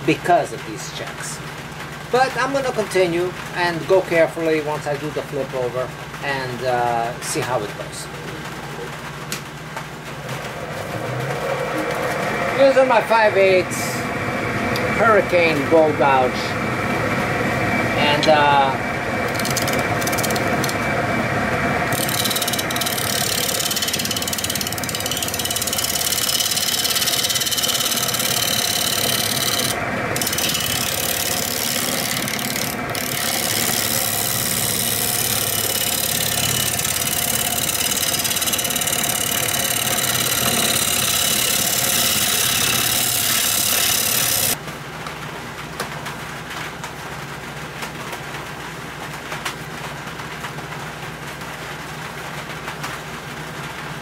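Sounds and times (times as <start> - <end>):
wood lathe running: 17.8 - 44.6.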